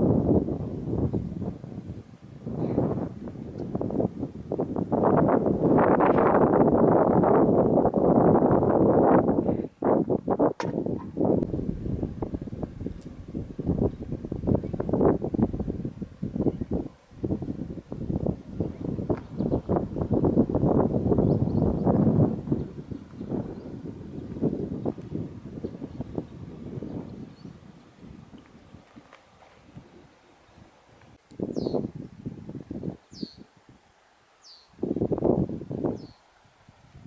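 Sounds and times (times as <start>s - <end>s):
wind buffeting microphone: 0.0s - 33.9s, 34.7s - 37.0s.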